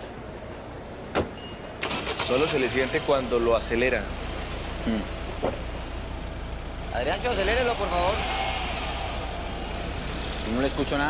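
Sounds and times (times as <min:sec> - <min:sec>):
car engine revving: 0:01.9 - 0:11.0.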